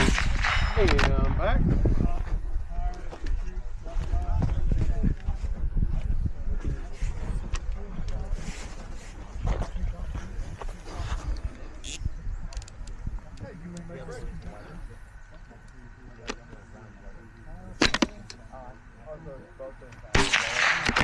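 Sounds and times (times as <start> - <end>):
faint indistinct voices: 0.6 - 21.0.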